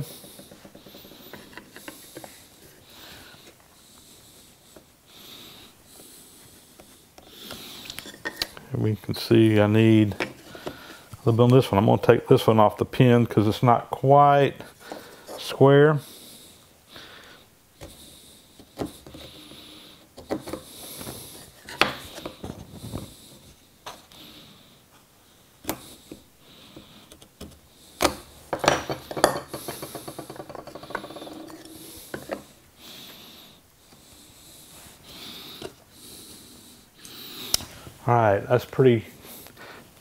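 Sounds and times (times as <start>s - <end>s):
chisel scraping wood: 20.2s - 22.3s.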